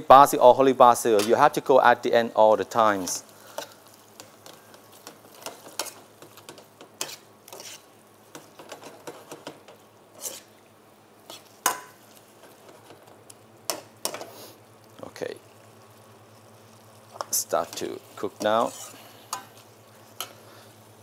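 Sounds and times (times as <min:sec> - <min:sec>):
faint sizzle: 0:00.0 - 0:21.0
metal spatula scraping wok: 0:02.9 - 0:09.4, 0:10.1 - 0:10.5, 0:11.2 - 0:13.0, 0:17.1 - 0:20.5.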